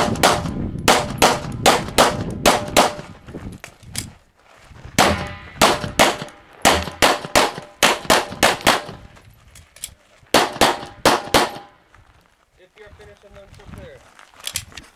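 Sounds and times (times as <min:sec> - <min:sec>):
pistol shots: 0:00.0 - 0:03.1, 0:05.0 - 0:09.1, 0:10.3 - 0:11.8.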